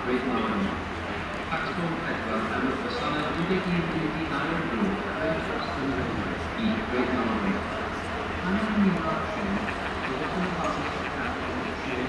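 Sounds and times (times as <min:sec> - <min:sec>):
people talking: 0:00.0 - 0:12.0
steam locomotive rumbling: 0:03.4 - 0:12.0.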